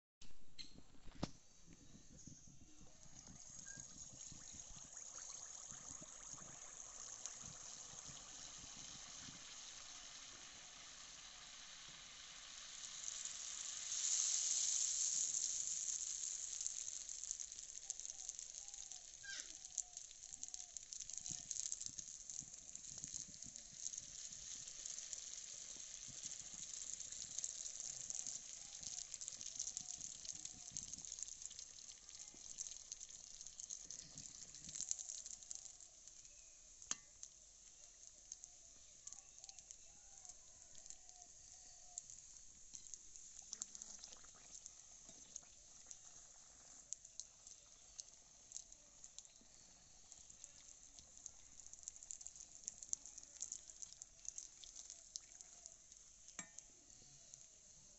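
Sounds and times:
batter deep-frying in oil: 0:00.6 - 0:57.9.

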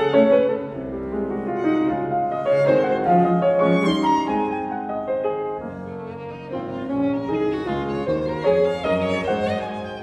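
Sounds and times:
cello bowing sustained notes: 0:00.0 - 0:10.0
piano chords: 0:00.0 - 0:10.0
violin: 0:00.0 - 0:10.0.

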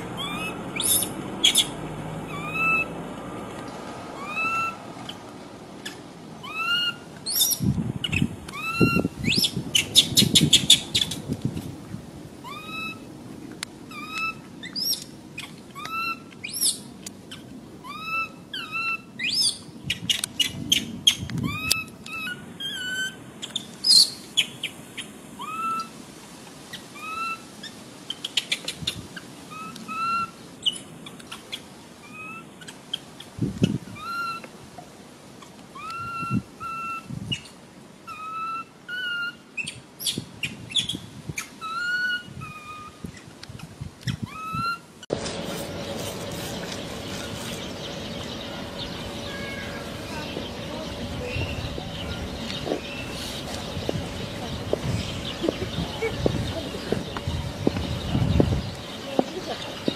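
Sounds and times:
infant monkey crying: 0:00.0 - 0:01.7, 0:02.3 - 0:03.0, 0:04.2 - 0:04.8, 0:05.8 - 0:07.6, 0:08.5 - 0:09.5, 0:12.4 - 0:13.1, 0:13.9 - 0:16.7, 0:17.3 - 0:19.5, 0:21.5 - 0:23.2, 0:25.4 - 0:25.9, 0:27.0 - 0:27.4, 0:29.5 - 0:30.4, 0:32.0 - 0:32.6, 0:33.9 - 0:34.4, 0:35.8 - 0:37.1, 0:38.1 - 0:39.4, 0:41.6 - 0:43.0, 0:44.2 - 0:44.9, 0:49.1 - 0:50.3.

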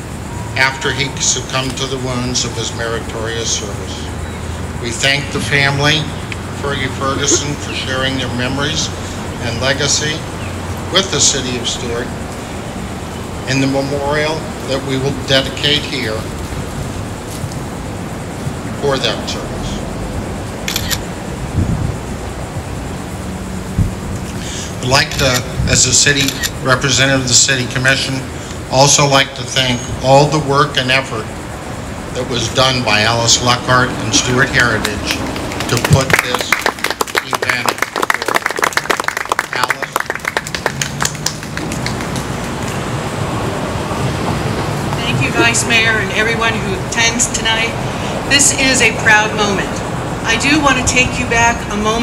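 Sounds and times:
outdoor background noise: 0:00.0 - 0:52.0
road vehicle rumble: 0:00.0 - 0:52.0
audience clapping: 0:34.3 - 0:43.0.

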